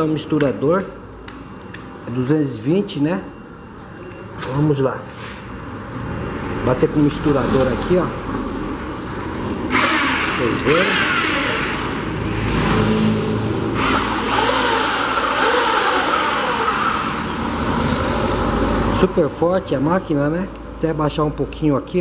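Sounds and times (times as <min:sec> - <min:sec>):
electric paint mixer running: 0:09.7 - 0:12.2, 0:13.8 - 0:18.8.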